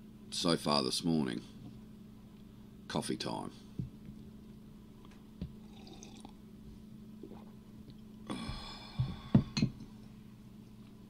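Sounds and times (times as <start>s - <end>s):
man sipping coffee: 5.6s - 6.4s, 7.2s - 7.6s.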